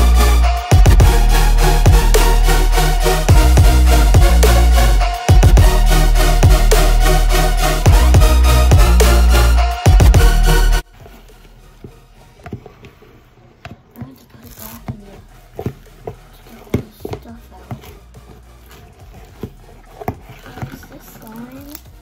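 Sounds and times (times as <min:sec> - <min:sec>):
utensil stirring slime in plastic bowl: 0:10.8 - 0:22.0.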